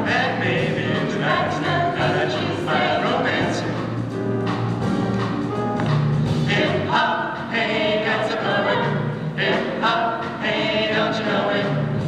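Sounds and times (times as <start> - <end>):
vocal jazz ensemble singing: 0.0 - 4.3, 6.2 - 12.0.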